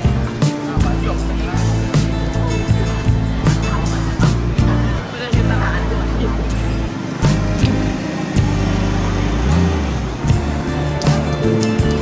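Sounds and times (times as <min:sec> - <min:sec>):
low bass notes: 0:00.0 - 0:12.0.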